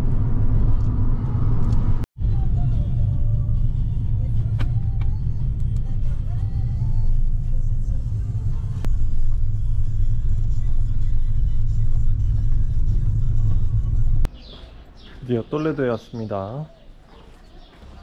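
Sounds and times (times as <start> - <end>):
car interior rumble: 0.0 - 14.3.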